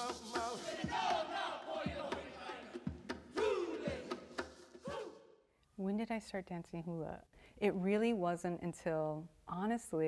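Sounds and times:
voices chanting and calling out: 0.0 - 5.4.

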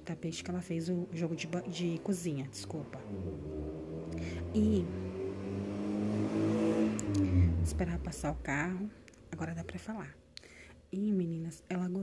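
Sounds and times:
car passing by: 1.1 - 8.5.

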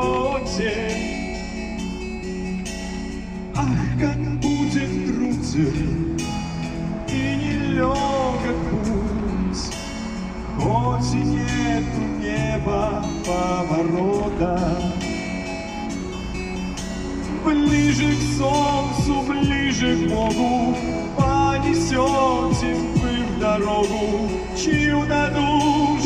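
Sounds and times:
karaoke pop backing track: 0.0 - 26.0.

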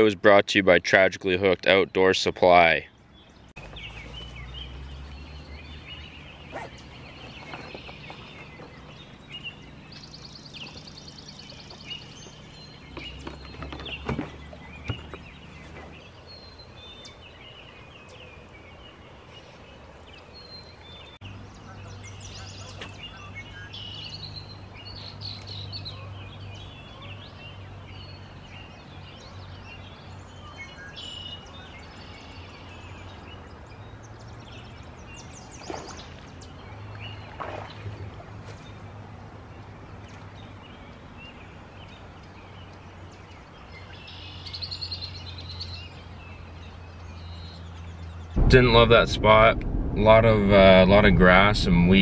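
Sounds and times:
songbirds chirping and trilling: 0.0 - 52.0
short sharp sounds: 48.4 - 52.0
steady low hum: 48.4 - 52.0.

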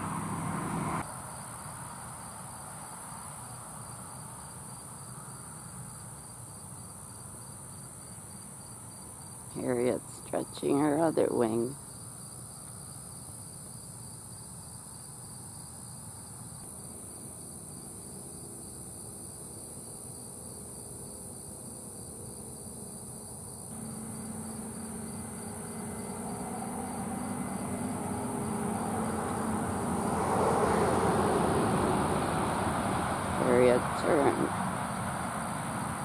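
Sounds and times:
road traffic rumble: 0.0 - 3.2, 9.5 - 11.8, 23.7 - 36.0
crickets trilling: 0.0 - 36.0.

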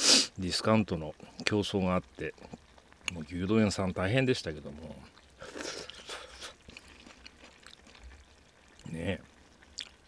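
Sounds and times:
slurping and chewing: 5.0 - 10.0.

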